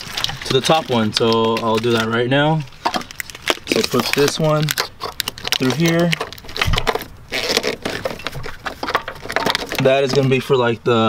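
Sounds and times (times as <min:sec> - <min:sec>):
plastic loom scraping and rustling: 0:00.0 - 0:10.6
small clicks and crackles: 0:02.8 - 0:10.4.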